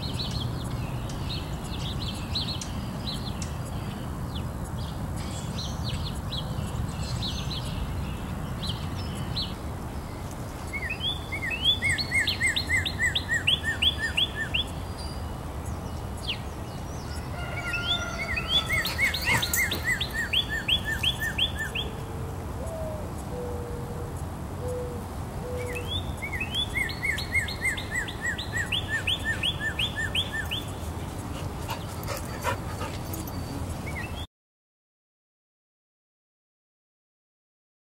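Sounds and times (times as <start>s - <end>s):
songbird singing repeated notes: 0.0s - 34.3s.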